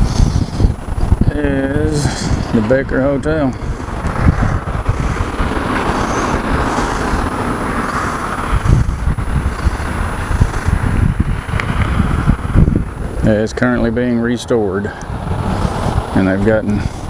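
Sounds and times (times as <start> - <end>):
road traffic passing: 0.0 - 17.0
wind rumbling on microphone: 0.0 - 17.0.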